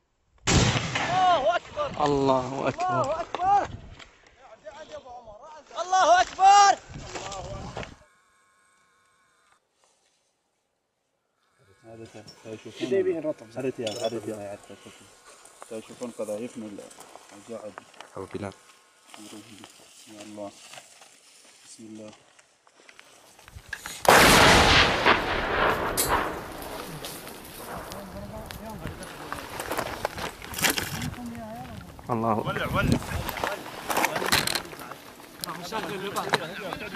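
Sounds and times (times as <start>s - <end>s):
artillery gun blast: 0.4s - 1.4s, 24.0s - 28.5s
rumbling echo: 24.1s - 29.3s.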